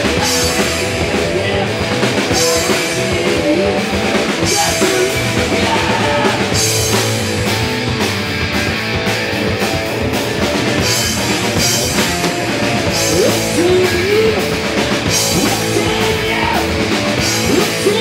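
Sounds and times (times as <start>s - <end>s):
punk band playing live: 0.0s - 18.0s.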